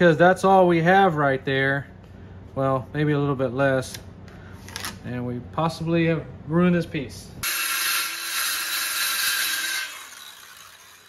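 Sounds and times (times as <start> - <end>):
circular saw whining: 7.4 - 11.0
saw winding down: 7.4 - 11.0.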